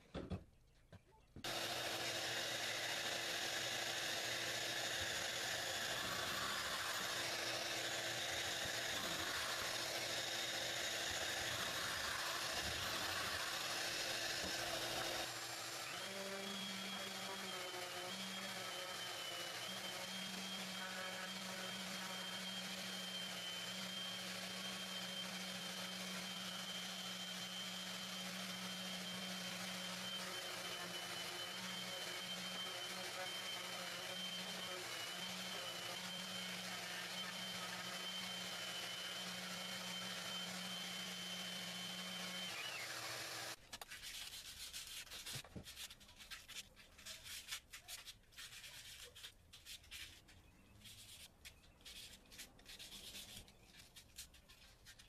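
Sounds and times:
orbital sander on wood: 1.4s - 43.6s
power tool running: 1.4s - 43.6s.

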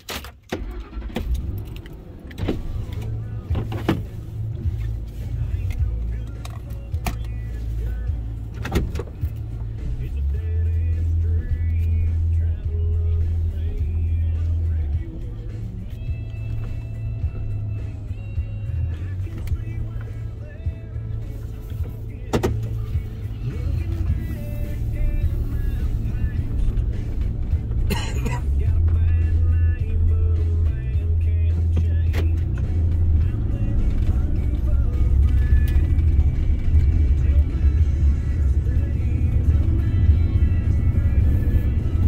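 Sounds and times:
car engine starting and idling: 0.0s - 42.0s
music playing: 0.5s - 42.0s.

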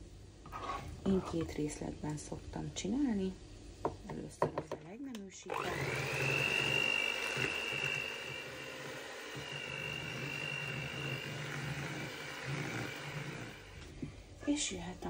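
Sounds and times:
electric hand mixer whining: 5.5s - 13.9s.

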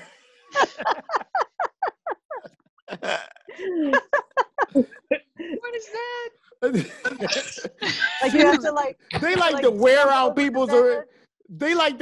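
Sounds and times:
woman laughing hard: 0.5s - 5.1s.

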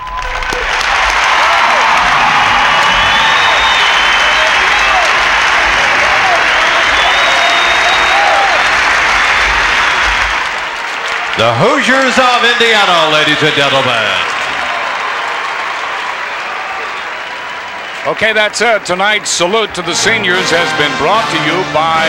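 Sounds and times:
shouts and whistles: 0.0s - 8.8s
crowd applauding and cheering: 0.0s - 22.0s.

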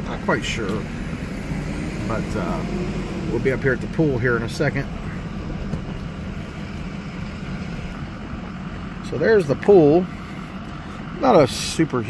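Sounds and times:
engine and tyre rumble on gravel: 0.0s - 12.0s.

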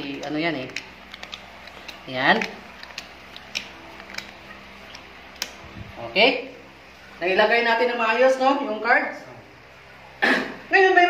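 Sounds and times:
playing cards clicking on tabletop: 0.2s - 4.3s.

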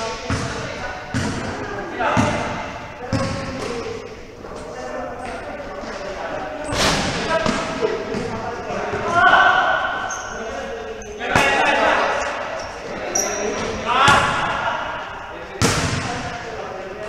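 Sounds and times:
shoes squeaking on court: 10.0s - 14.5s.

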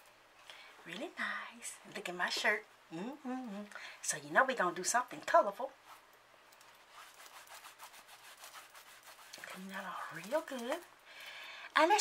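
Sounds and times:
cloth rubbing on skin: 5.8s - 6.1s, 6.7s - 10.9s.

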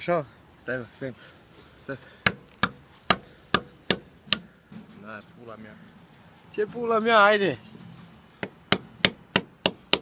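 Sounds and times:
hammer striking hard material: 8.4s - 10.0s.

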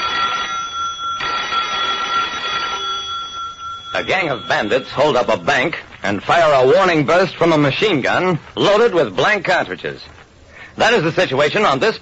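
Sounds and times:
telephone bell ringing: 0.0s - 5.8s.

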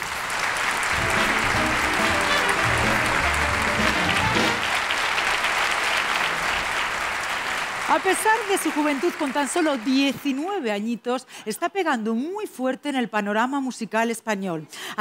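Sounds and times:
audience applauding: 0.0s - 10.6s
short music piece: 0.9s - 4.8s.

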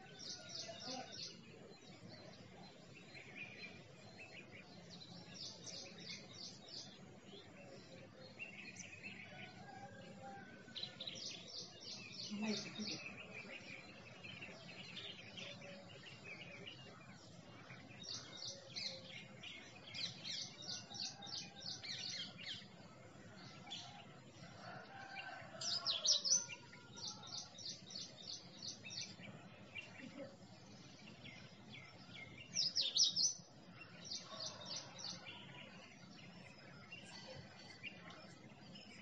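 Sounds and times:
small birds chirping: 0.0s - 39.0s.

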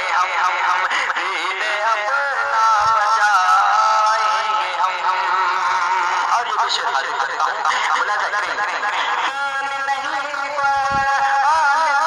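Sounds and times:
young man singing: 0.0s - 12.0s.

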